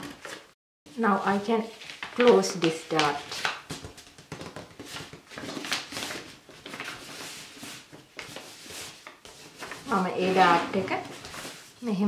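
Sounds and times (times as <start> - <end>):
paper rustling and crinkling: 1.2 - 12.0.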